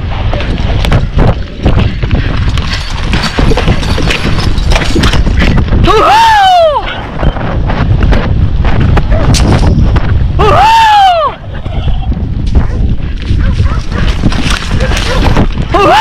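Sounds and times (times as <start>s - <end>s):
horse galloping on dry ground: 0.0s - 6.0s, 6.8s - 10.4s, 11.4s - 16.0s
wind on microphone: 0.0s - 16.0s
rider yelling: 14.8s - 16.0s.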